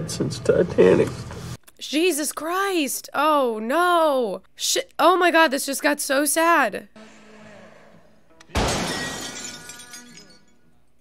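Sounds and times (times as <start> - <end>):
glass and debris shattering: 8.6 - 10.6.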